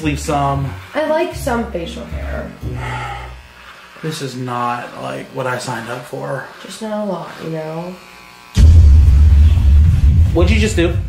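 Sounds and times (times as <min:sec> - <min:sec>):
electric hair clippers buzzing: 0:00.0 - 0:10.7.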